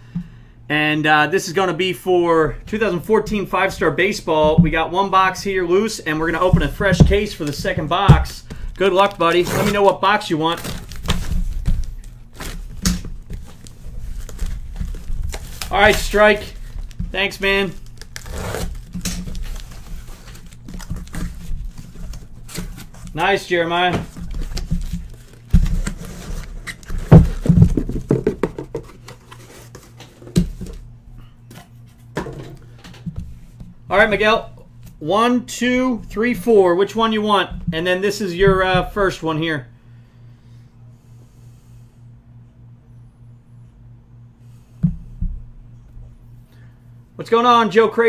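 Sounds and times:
cardboard and plastic rustling: 5.4 - 30.9
cardboard box knocks and thumps: 23.9 - 29.3
boxes thumping on desk: 26.8 - 29.2.

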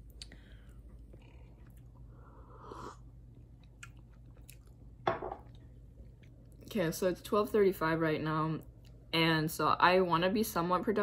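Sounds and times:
faint chewing: 0.0 - 2.1, 3.2 - 4.8.

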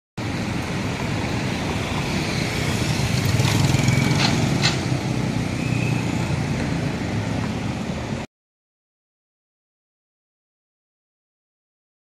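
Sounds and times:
traffic driving past: 0.2 - 8.3.

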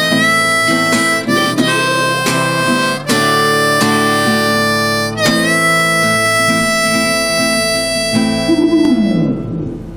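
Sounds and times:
acoustic guitar: 0.0 - 9.9
harmonica chords: 0.0 - 9.9.

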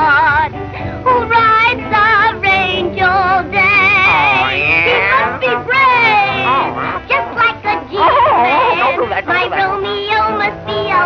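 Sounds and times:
woman singing in cartoon voice: 1.1 - 11.0.

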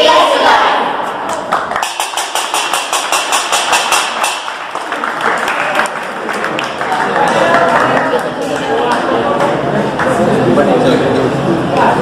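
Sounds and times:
metal plate beaten rapidly: 1.8 - 4.7.

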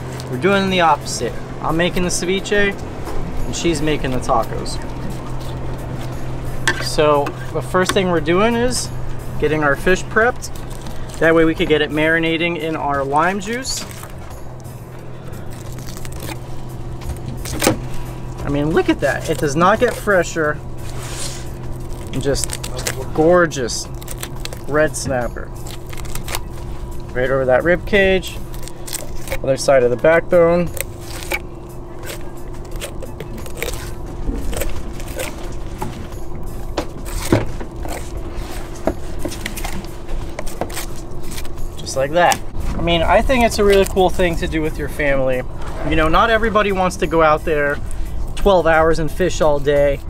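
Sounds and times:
low engine hum: 0.0 - 50.0
low rumble: 0.0 - 50.0
knife scraping fish bones: 30.7 - 31.4, 32.0 - 35.7.

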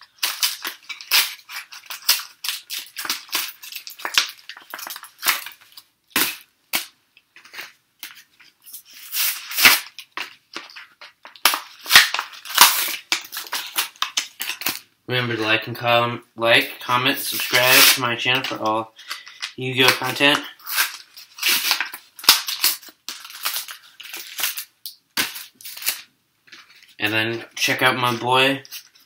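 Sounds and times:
cardboard and foil tearing: 0.0 - 6.4, 7.4 - 14.8, 17.3 - 18.0, 19.0 - 27.0.

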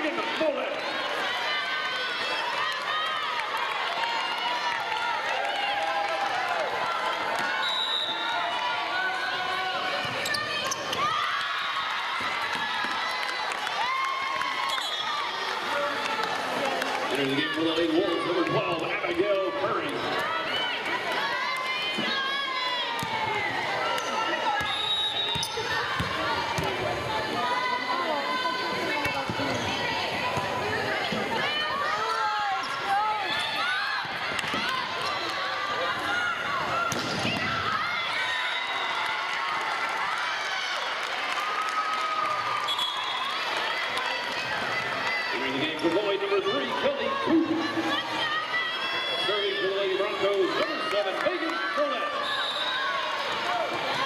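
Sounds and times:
chatter of voices: 43.6 - 52.2.

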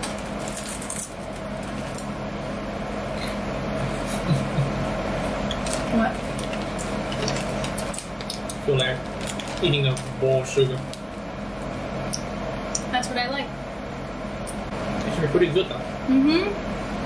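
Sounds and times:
people chewing crunchy snacks: 5.4 - 11.0.

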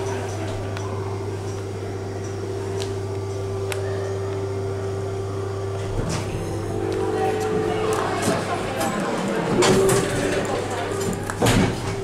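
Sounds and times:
lift car humming: 0.0 - 12.0
steady tone: 3.5 - 11.0.

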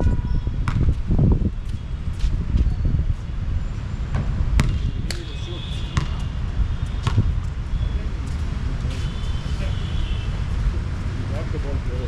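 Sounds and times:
basketball bouncing on hard court: 0.6 - 1.0, 4.1 - 5.2, 5.9 - 7.5.

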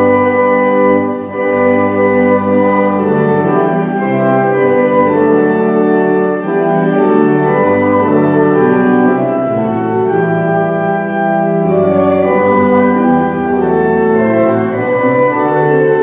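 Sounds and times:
organ playing hymn chords: 0.0 - 16.0.

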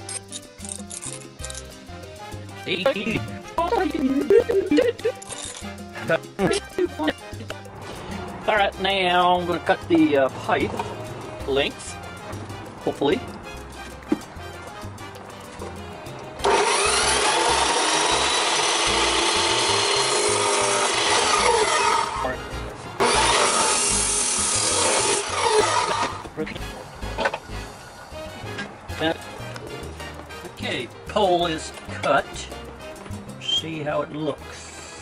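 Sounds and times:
cut-off saw grinding steel: 16.4 - 22.4, 23.0 - 26.3, 34.6 - 35.0.

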